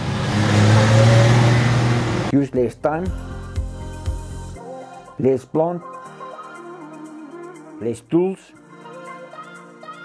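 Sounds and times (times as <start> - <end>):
road noise: 0.0 - 2.3
truck engine passing: 0.0 - 2.3.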